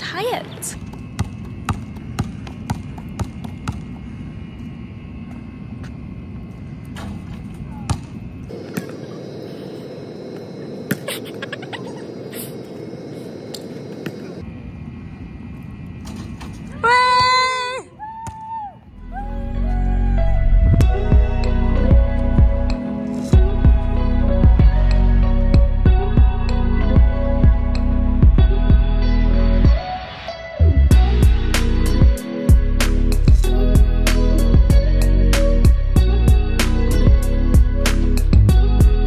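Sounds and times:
basketball bouncing on hard court: 0:00.9 - 0:03.9.

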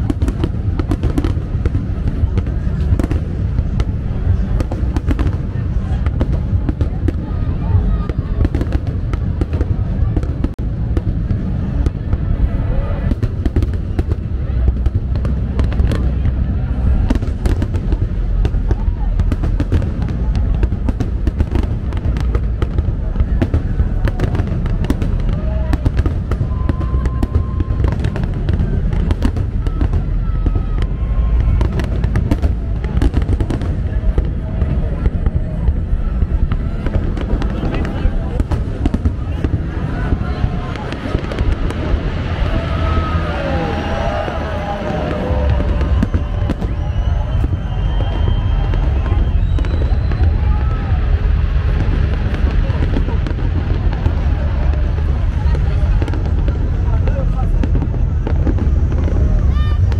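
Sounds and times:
fireworks sharp bangs: 0:00.0 - 0:59.9
low rumble: 0:00.0 - 0:59.9.

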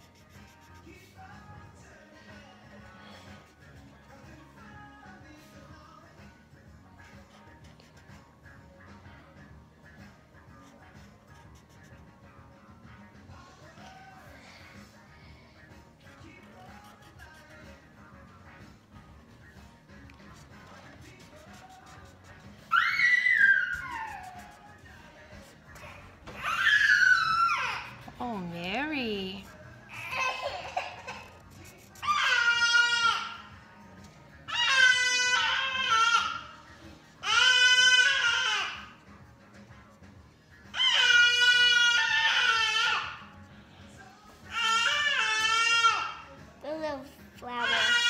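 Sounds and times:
faint background music: 0:00.0 - 0:48.0
child screaming: 0:22.7 - 0:24.4, 0:26.3 - 0:27.9, 0:47.5 - 0:48.0
toddler shrieking: 0:22.7 - 0:24.5, 0:25.8 - 0:28.0, 0:32.0 - 0:33.4, 0:34.5 - 0:36.4, 0:37.2 - 0:38.9, 0:40.7 - 0:43.2, 0:44.5 - 0:46.2, 0:47.5 - 0:48.0.

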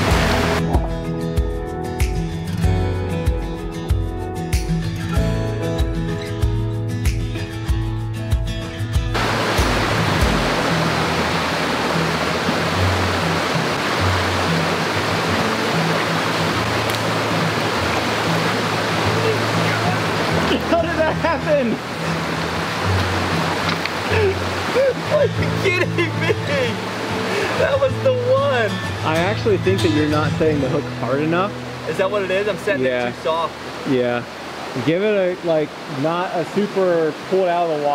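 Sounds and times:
stream water rushing: 0:00.0 - 0:03.9, 0:04.8 - 0:37.9
background music with bass: 0:00.0 - 0:22.4.

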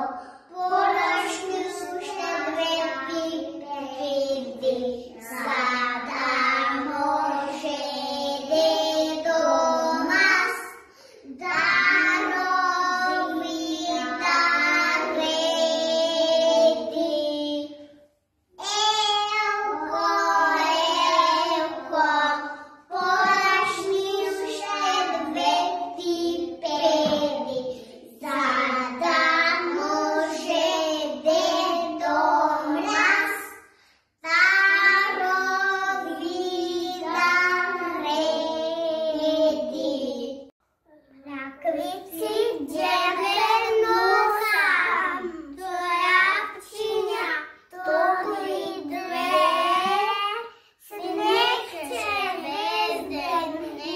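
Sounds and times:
children singing: 0:00.0 - 0:18.0, 0:18.6 - 0:40.5, 0:41.7 - 0:53.9.

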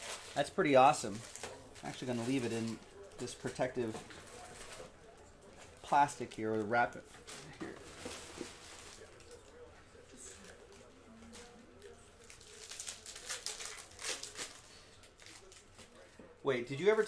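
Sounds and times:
plastic wrapping crinkling: 0:00.0 - 0:16.0
faint muffled voices: 0:00.0 - 0:17.0.

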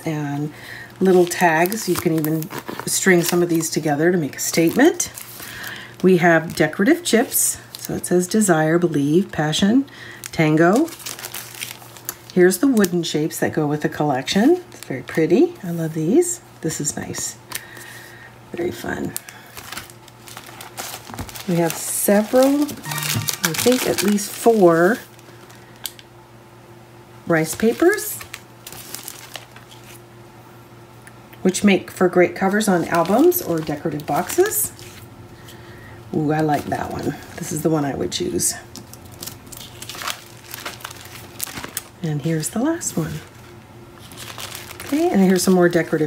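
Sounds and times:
plastic packaging crinkling: 0:00.1 - 0:08.4, 0:09.1 - 0:13.0, 0:18.7 - 0:26.1, 0:27.4 - 0:30.0, 0:32.4 - 0:35.1, 0:38.2 - 0:46.0.

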